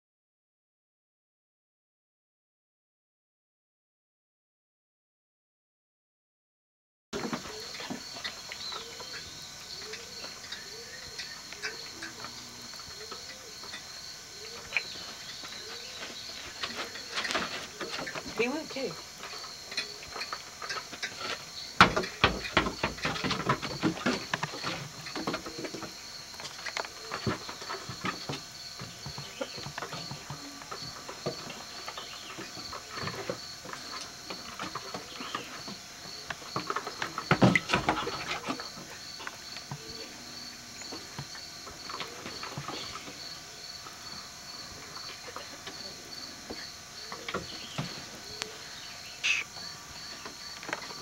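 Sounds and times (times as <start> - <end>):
insects chirping: 7.2 - 51.0.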